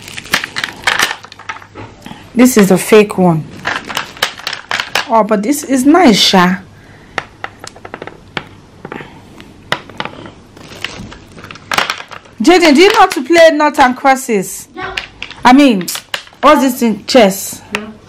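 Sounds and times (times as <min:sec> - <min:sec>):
plastic tray crackling: 0:00.0 - 0:01.7.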